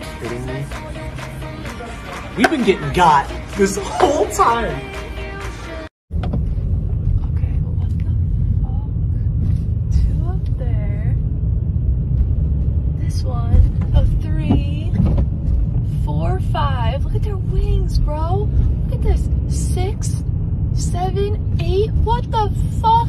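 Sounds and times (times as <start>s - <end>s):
car engine rumbling: 0.0s - 23.0s.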